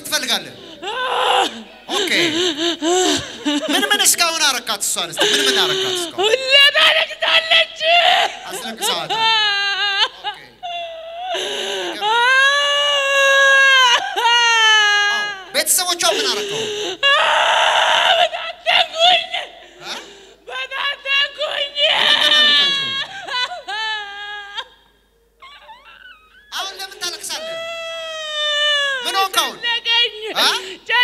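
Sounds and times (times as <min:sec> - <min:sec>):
sobbing breath: 0:00.6 - 0:03.7, 0:05.2 - 0:06.2, 0:10.6 - 0:12.3, 0:16.1 - 0:17.1
woman wailing and crying out: 0:00.8 - 0:04.2, 0:05.2 - 0:24.8, 0:25.4 - 0:31.0.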